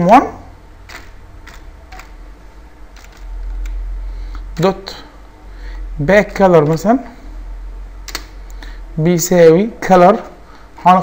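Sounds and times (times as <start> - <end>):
low steady hum: 0.0 - 11.0
keyboard keys tapping: 0.9 - 2.2, 2.9 - 3.8.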